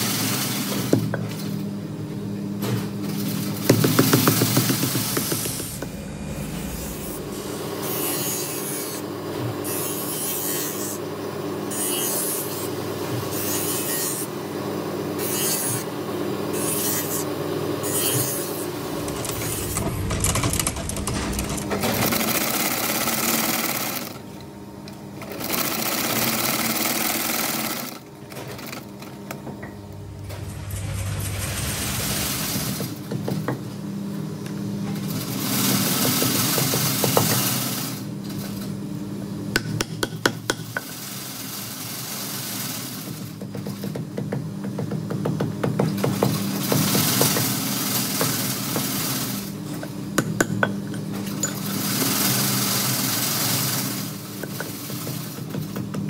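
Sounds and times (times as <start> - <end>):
steady motor hum: 0.8 - 35.3.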